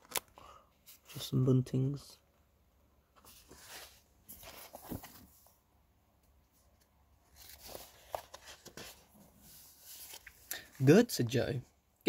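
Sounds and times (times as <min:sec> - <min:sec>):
paper rustling: 0:03.2 - 0:05.6, 0:07.3 - 0:10.5.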